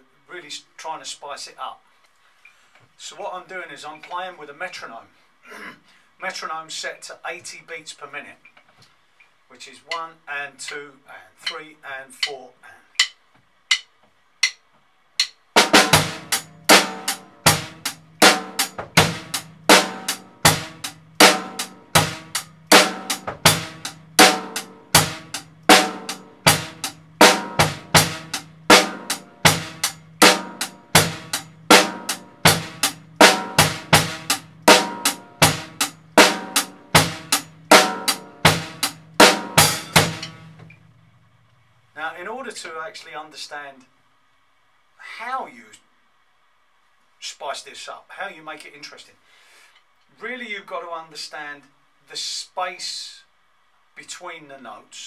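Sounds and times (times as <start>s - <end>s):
drum kit groove: 11.4s - 40.8s.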